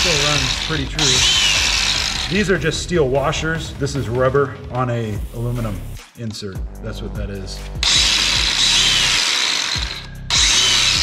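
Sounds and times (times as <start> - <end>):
belt sander high whine: 0.0 - 2.3, 7.8 - 11.0.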